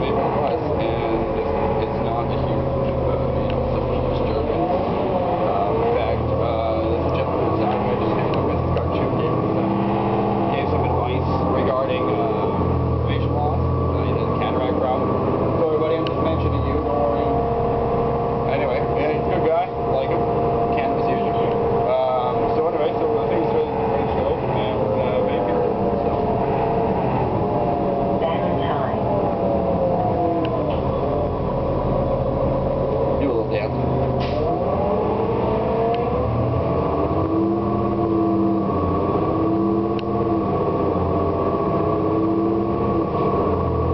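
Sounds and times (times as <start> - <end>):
bus engine and road drone: 0.0 - 43.9.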